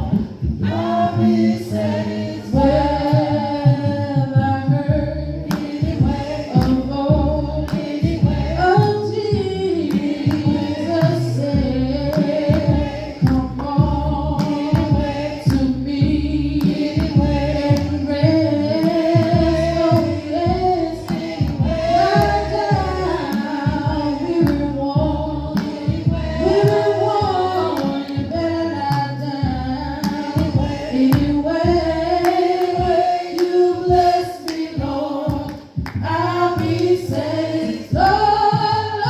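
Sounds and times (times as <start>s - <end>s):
congregation singing a hymn: 0.0s - 39.0s
steady beat of sharp taps: 3.0s - 39.0s.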